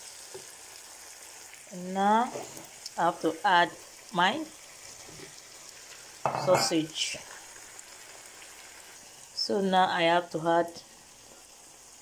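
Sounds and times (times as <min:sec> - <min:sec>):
faint steady sizzle in pan: 0:00.0 - 0:12.0.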